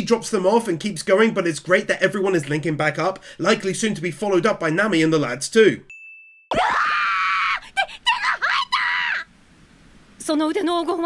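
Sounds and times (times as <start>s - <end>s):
girl screaming: 6.5s - 9.3s.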